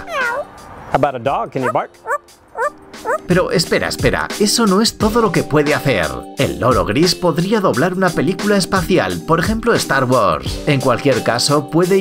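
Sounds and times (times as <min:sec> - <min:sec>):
parrot whining call: 0:00.0 - 0:00.5, 0:01.6 - 0:03.3
parrot yelping barks: 0:00.0 - 0:00.5, 0:01.6 - 0:03.3.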